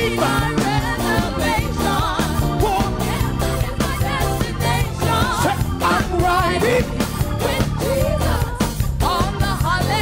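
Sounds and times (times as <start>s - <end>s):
gospel band playing: 0.0s - 10.0s
man singing gospel: 2.4s - 3.2s, 5.0s - 7.2s.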